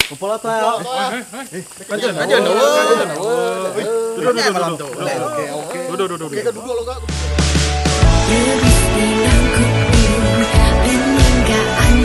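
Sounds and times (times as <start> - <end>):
men talking over one another: 0.1 - 7.4.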